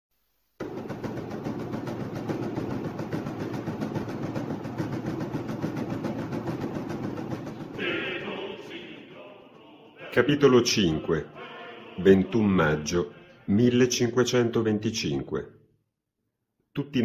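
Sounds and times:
loud rhythmic rumbling clatter: 0:00.6 - 0:13.2.

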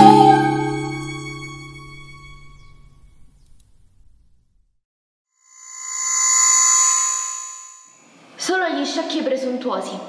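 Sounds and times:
bell-like chime: 0:05.7 - 0:08.1
woman speaking: 0:08.4 - 0:10.0.

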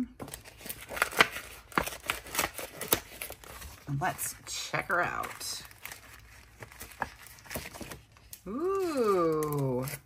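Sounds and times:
paper rustling: 0:00.2 - 0:08.3.

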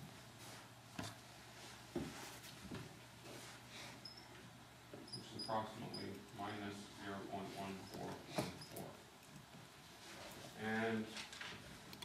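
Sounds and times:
marker squeaking on whiteboard: 0:05.0 - 0:06.6.

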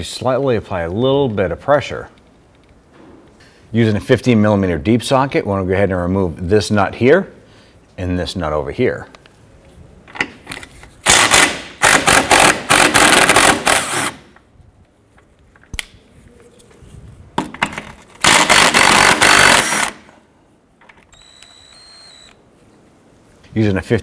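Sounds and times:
impact wrench hammering nuts: 0:15.8 - 0:16.0.

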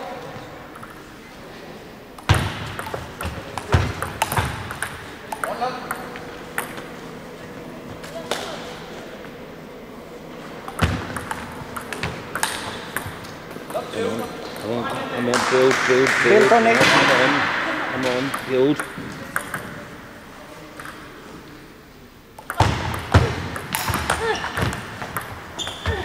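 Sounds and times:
table tennis ball hits: 0:02.2 - 0:06.9, 0:10.6 - 0:13.9, 0:14.5 - 0:19.8, 0:22.4 - 0:26.0.

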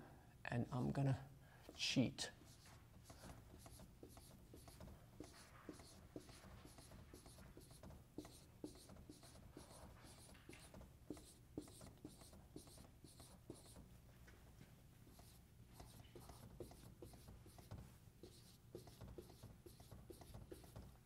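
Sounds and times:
marker drawing on whiteboard: 0:01.7 - 0:13.9, 0:15.0 - 0:21.0.

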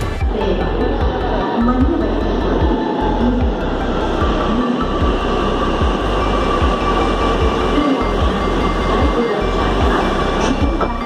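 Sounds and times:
electric whine: 0:00.0 - 0:11.0
metro train rumbling: 0:00.0 - 0:11.0.

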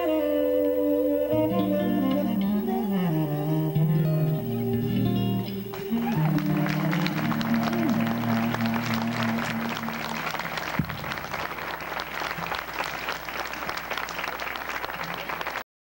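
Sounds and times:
jazz band final chord: 0:00.0 - 0:11.4
audience clapping: 0:04.9 - 0:15.6.

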